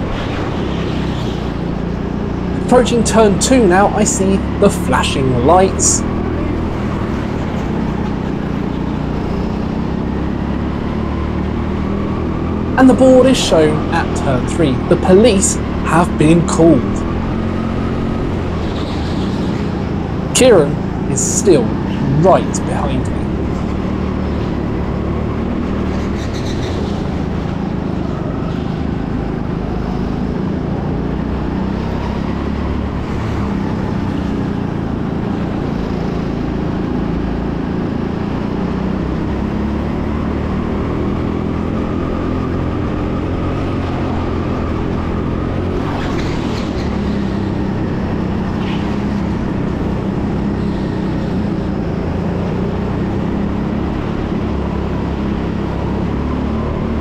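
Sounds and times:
go-kart engine racing: 0.0s - 57.0s.

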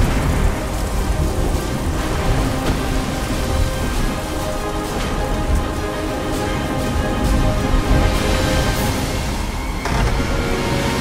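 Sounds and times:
deep continuous rumble: 0.0s - 11.0s
music with sustained notes: 0.0s - 11.0s
rain: 0.0s - 11.0s
thunder: 0.0s - 11.0s.

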